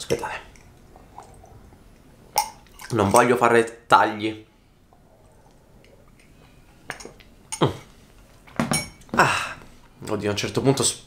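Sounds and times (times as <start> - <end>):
sipping from a mug: 0.4 - 3.1
ceramic mug clinking: 2.3 - 3.2.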